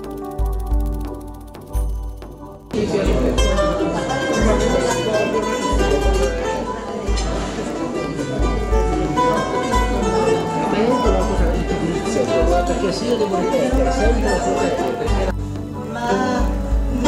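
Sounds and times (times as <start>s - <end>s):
mandolin picked and strummed: 2.2s - 15.3s
person singing: 15.8s - 17.0s.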